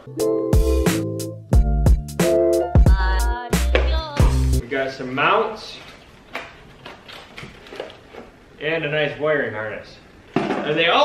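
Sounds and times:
plastic bag crinkling: 5.7s - 8.4s.

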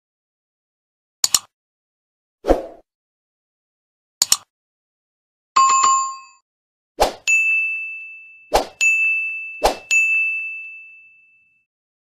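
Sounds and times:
lower chime: 7.2s - 11.7s
bright high bell-like ding: 7.3s - 11.6s.

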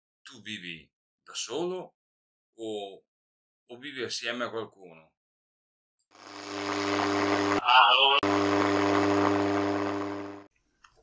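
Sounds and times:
radio hum and hiss: 6.2s - 10.5s.

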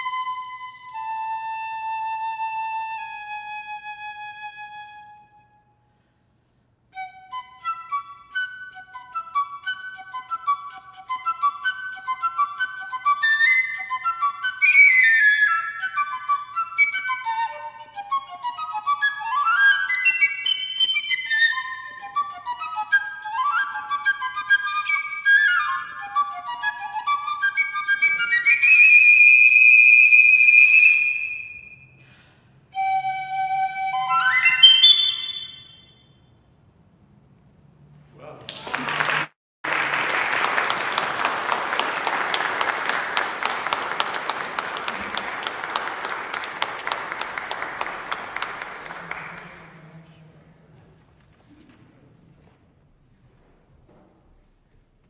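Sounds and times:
piccolo playing fast runs: 32.8s - 35.9s.

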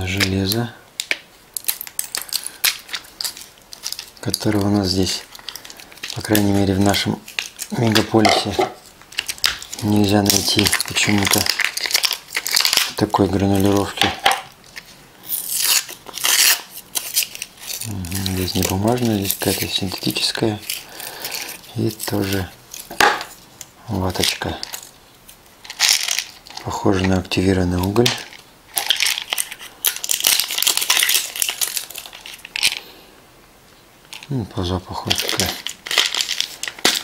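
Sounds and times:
plastic bag crinkling: 0.0s - 32.9s, 34.1s - 37.0s.

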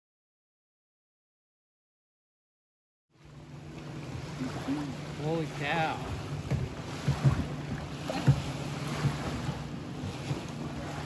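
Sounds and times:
wind buffeting microphone: 3.6s - 11.0s
small waves lapping on stones: 3.8s - 11.0s
dull knocks: 6.4s - 9.6s.

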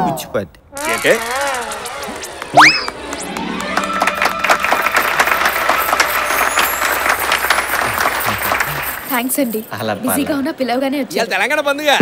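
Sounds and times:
film music with held tones: 0.7s - 9.1s
audience applauding: 0.8s - 9.4s.

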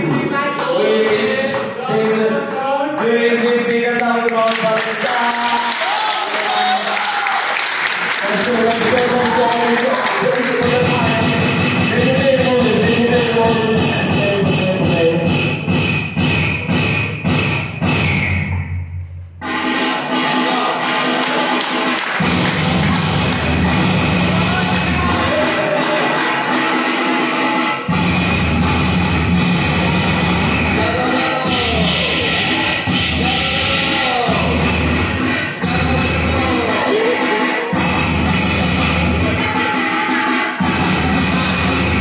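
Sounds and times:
loud dance music: 0.0s - 42.0s.

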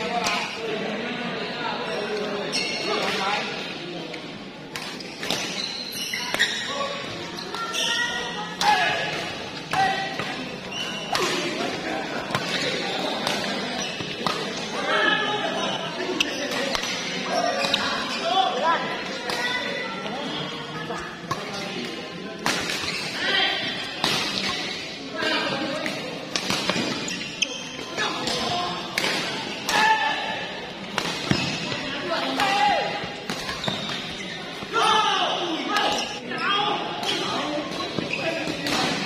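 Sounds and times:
people talking and calling out: 0.0s - 39.0s.

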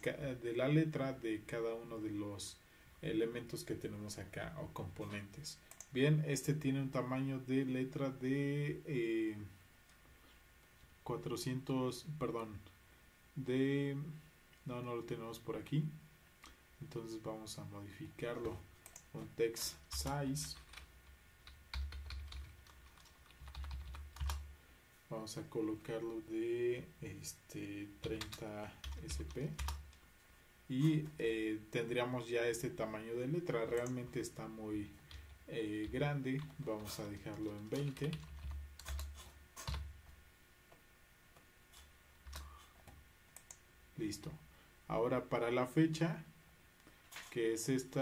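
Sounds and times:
keyboard and mouse clicks: 5.7s - 5.9s, 35.9s - 39.9s, 42.2s - 43.6s.

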